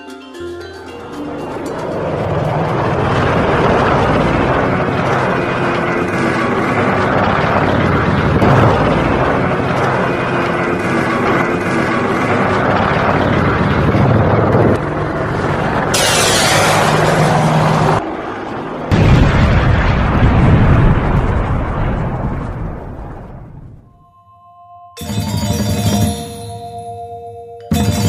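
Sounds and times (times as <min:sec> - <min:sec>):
helicopter flying past: 0:00.3 - 0:21.4.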